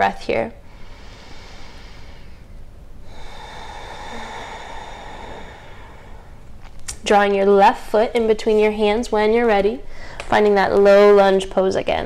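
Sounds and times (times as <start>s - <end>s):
woman breathing deeply: 0.6s - 6.8s, 9.8s - 10.3s.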